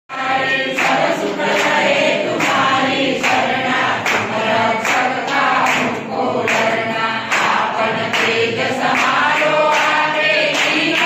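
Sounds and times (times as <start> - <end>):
congregation singing: 0.1 - 11.0
sharp claps: 0.4 - 11.0.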